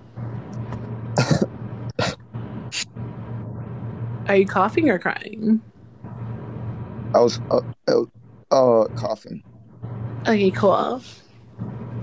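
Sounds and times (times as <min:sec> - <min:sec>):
person coughing: 0:01.2 - 0:02.2.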